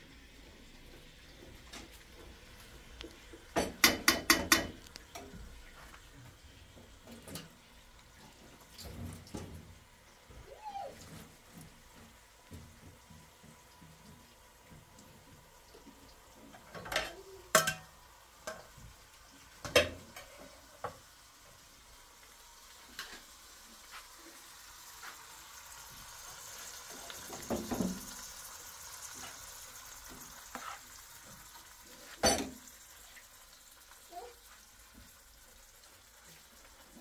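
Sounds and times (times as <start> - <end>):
food sizzling: 0.0 - 37.0
cookware knocking and scraping: 3.5 - 4.8, 16.5 - 17.9, 19.6 - 20.4.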